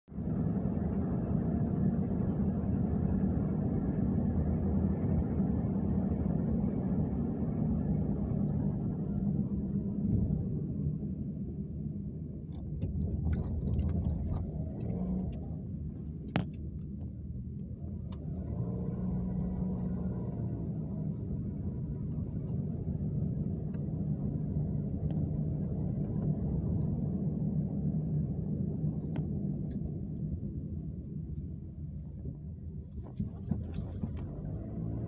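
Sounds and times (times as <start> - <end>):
car road and engine rumble: 0.0 - 35.0.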